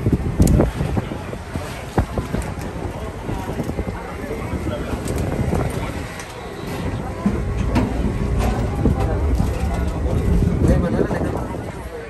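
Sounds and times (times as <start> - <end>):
ferry engines rumbling: 0.0 - 12.0
indistinct voices: 0.5 - 12.0.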